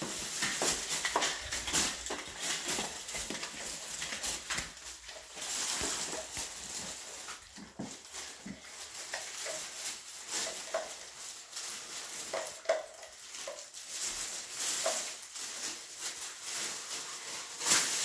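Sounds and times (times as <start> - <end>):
plastic bag rustling: 0.0 - 18.0.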